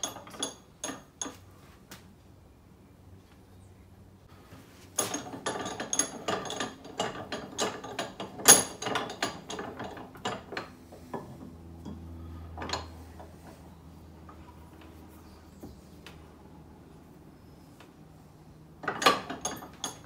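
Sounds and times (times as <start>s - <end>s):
metallic clicks and clanks of vise: 0.0s - 1.4s, 5.0s - 13.6s, 18.8s - 20.0s.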